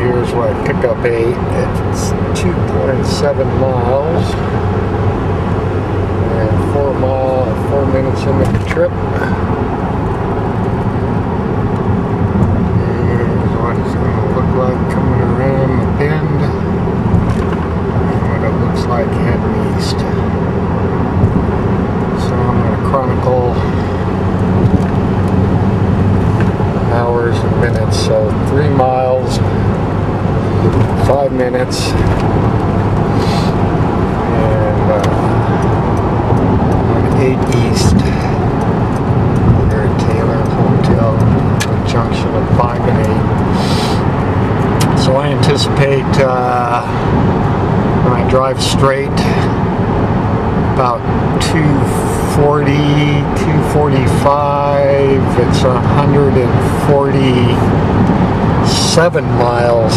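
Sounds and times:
car engine and road drone: 0.0 - 59.9.

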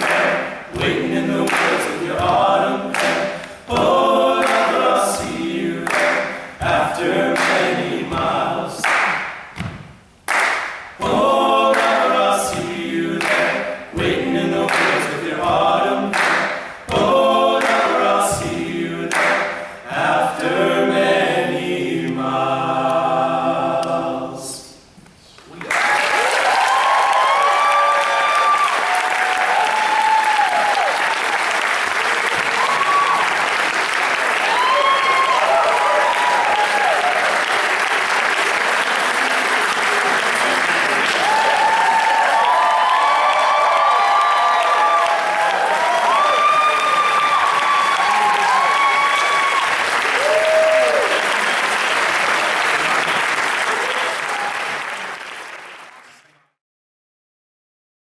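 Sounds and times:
audience applauding: 0.0 - 3.6, 25.5 - 56.4
whoops and shouts: 25.7 - 31.0, 32.5 - 33.3, 34.4 - 37.3, 41.2 - 51.2.

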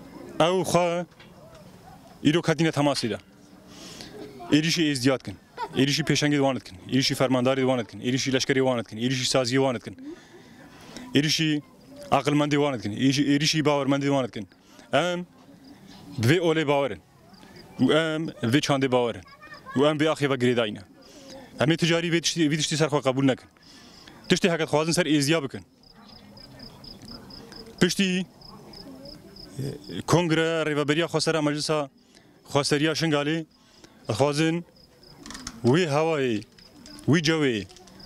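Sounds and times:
man speaking: 2.2 - 3.2, 4.5 - 10.0, 11.1 - 15.3, 16.2 - 17.0, 17.8 - 19.2, 24.3 - 25.6, 27.8 - 28.3, 29.6 - 31.9, 34.1 - 34.6, 35.6 - 36.5, 37.1 - 37.7
insect chirping: 25.8 - 27.8, 28.4 - 30.0, 33.5 - 38.0.

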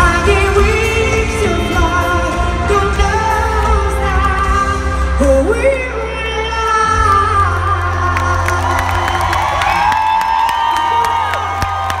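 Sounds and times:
crowd cheering and clapping: 7.1 - 12.0.

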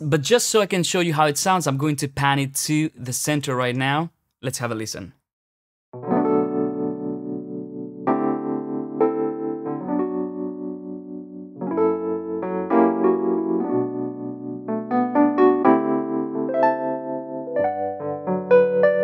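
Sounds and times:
electric piano chords: 6.0 - 19.0.

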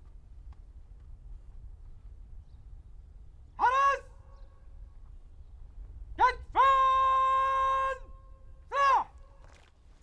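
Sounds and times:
person shouting command: 3.6 - 4.2, 6.2 - 8.1, 8.7 - 9.2.

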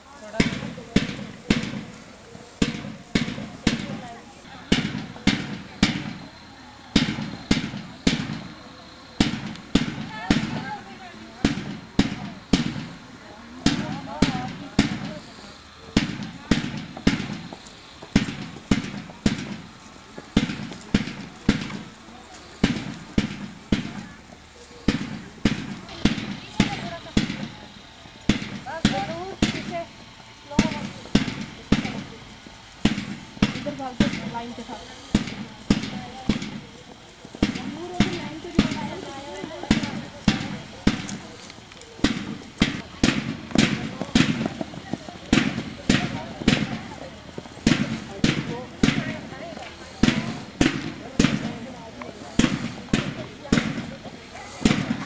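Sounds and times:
drum marching beat: 0.0 - 55.0
faint voices: 0.0 - 55.0.

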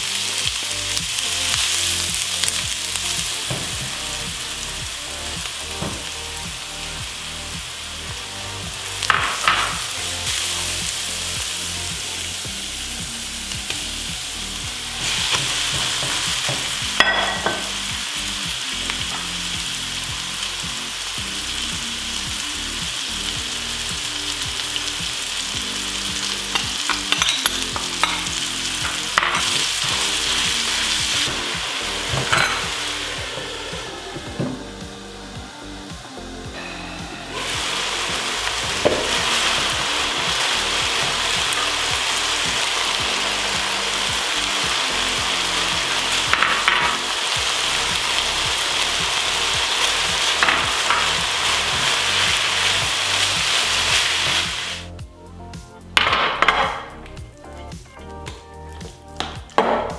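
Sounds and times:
onion sizzling in oil: 0.0 - 55.0.

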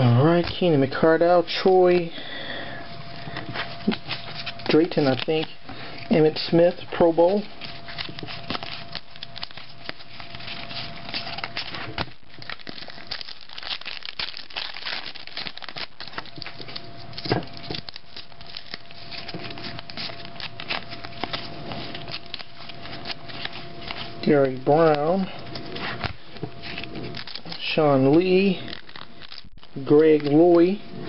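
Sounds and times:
wrapper crinkling and tearing: 0.2 - 31.0
cards rustling and clicking: 3.0 - 31.0.

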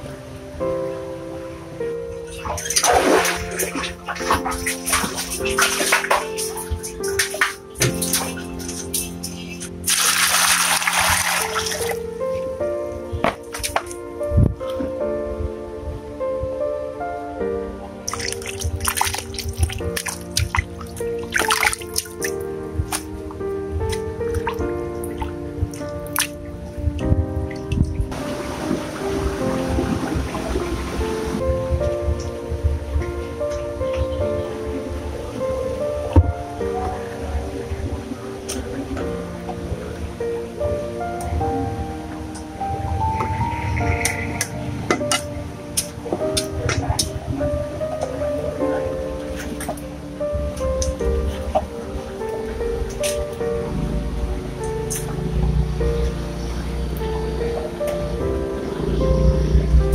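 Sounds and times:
rushing water: 0.0 - 16.1, 17.0 - 59.9
background music: 0.0 - 59.9
water splashing and dripping: 2.1 - 15.0, 18.0 - 40.1, 40.8 - 58.1
water splashing in bucket: 2.3 - 12.0, 13.3 - 14.0, 18.1 - 23.1, 23.8 - 26.4, 27.6 - 31.5.

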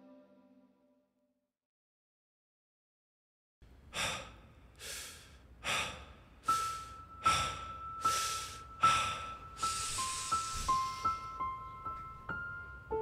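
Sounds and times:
heavy breathing: 3.9 - 11.4.

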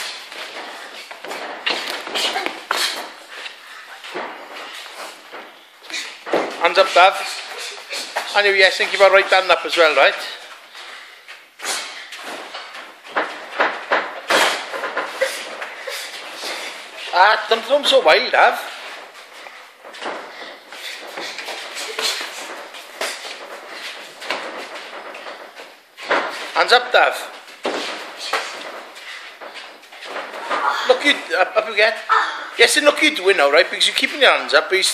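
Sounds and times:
boxing gloves slapping and thudding: 0.0 - 3.5, 11.7 - 17.0, 18.9 - 26.6.

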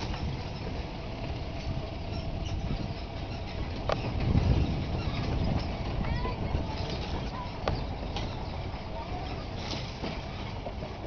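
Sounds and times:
light knocks and rattles: 0.0 - 11.0
truck engine and road rumble: 0.0 - 11.0.

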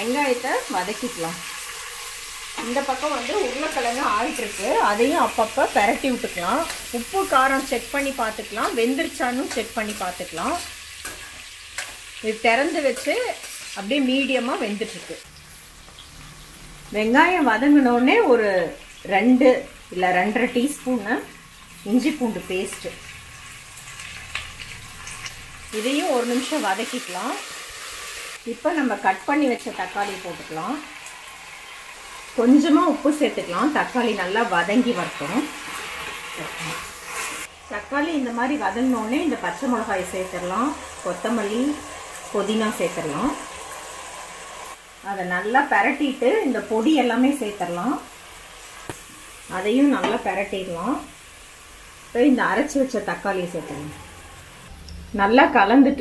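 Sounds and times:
onions sizzling in oil: 0.0 - 54.7.

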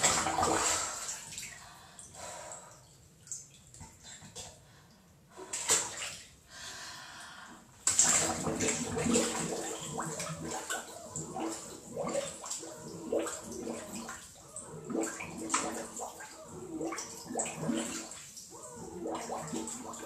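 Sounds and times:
water sloshing and gurgling: 0.0 - 6.6, 7.7 - 20.0.

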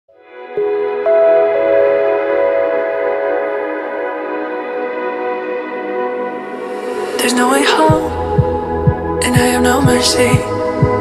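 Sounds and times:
sustained synthesizer chord: 0.3 - 7.2.

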